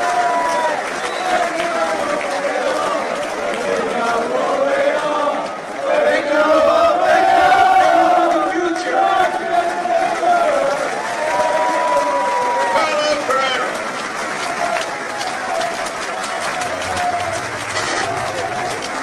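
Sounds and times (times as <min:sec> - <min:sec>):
stadium crowd chanting: 0:00.0 - 0:19.0.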